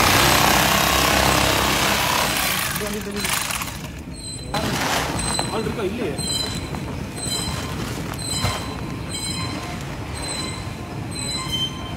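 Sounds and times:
high-pitched roller squeals: 4.1 - 11.9.

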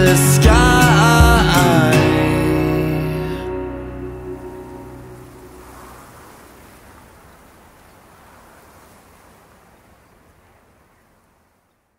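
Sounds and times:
low musical note: 0.0 - 6.2
wind and surf: 1.0 - 11.8.

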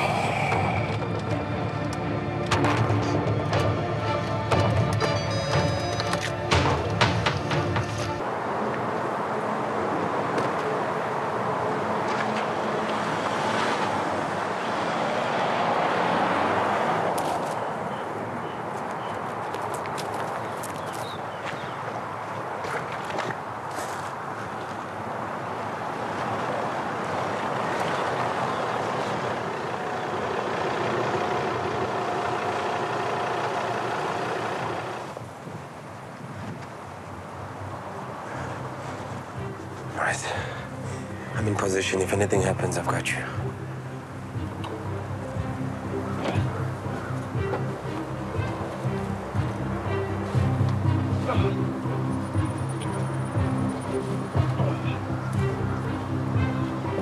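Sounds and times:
sustained drone: 0.0 - 14.7
low vehicle rumble: 0.0 - 20.0, 23.4 - 57.0.

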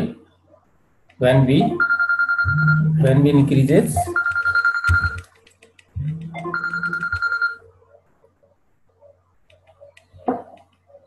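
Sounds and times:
telephone ringing: 1.8 - 2.8, 4.1 - 5.3, 6.4 - 7.6.

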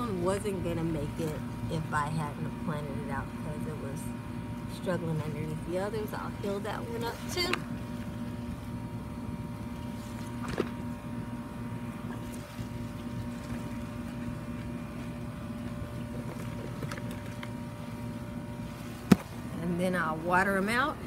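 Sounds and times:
mechanical motor hum: 0.0 - 21.0.

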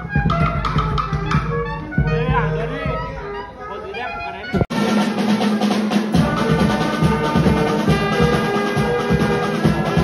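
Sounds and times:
steady drum beat: 0.0 - 3.2, 4.6 - 10.0
brass band playing: 0.0 - 10.0
reed instruments: 0.0 - 10.0.

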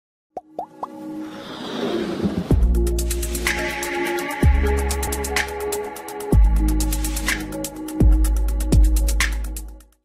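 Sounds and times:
building music: 0.6 - 9.1.

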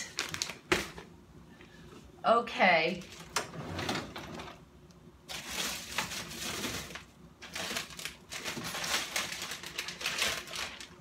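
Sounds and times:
frozen packages rustling and clacking: 0.0 - 1.1, 5.3 - 11.0.

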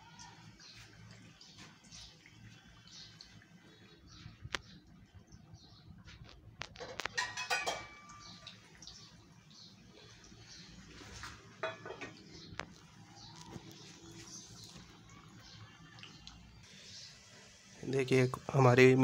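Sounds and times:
cakes sizzling in hot ghee: 0.0 - 5.1, 5.7 - 19.0
metallic clinks against pan: 7.1 - 8.4.

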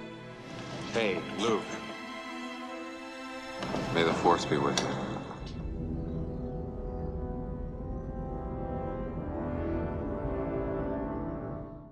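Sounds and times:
orchestral film score: 0.0 - 11.9
low brass long notes: 4.7 - 11.9.

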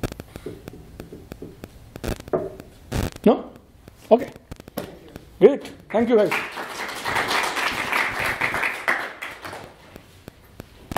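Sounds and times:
audience applauding: 5.9 - 9.8.

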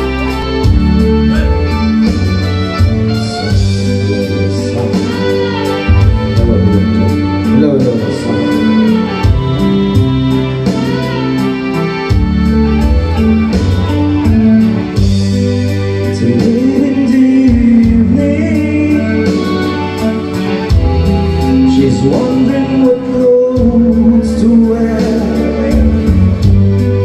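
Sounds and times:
recorded backing track: 0.0 - 27.0
man singing into a microphone: 3.1 - 9.1, 16.0 - 20.7, 21.4 - 26.5.

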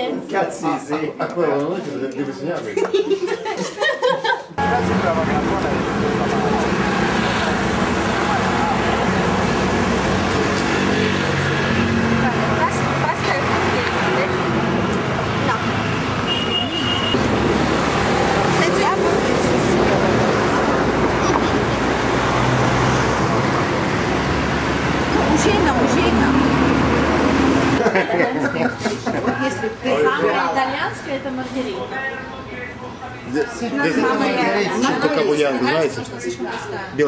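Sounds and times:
road traffic: 0.0 - 37.0
people talking indistinctly: 12.0 - 16.5, 27.8 - 37.0.

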